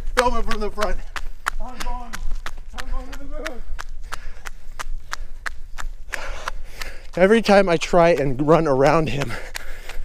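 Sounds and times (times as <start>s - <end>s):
sandals slapping on pavement: 0.0s - 10.0s.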